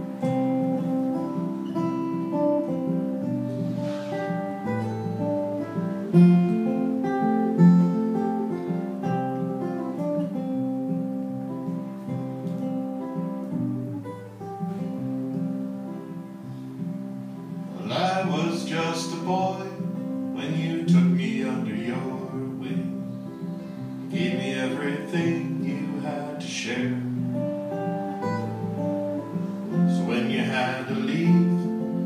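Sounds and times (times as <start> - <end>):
acoustic guitar picking: 0.0 - 32.0.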